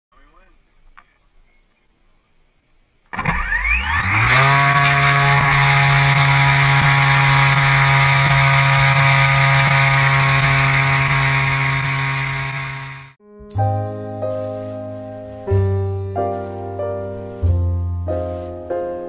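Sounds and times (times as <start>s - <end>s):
electric motor and propeller whine: 3.1s - 13.2s.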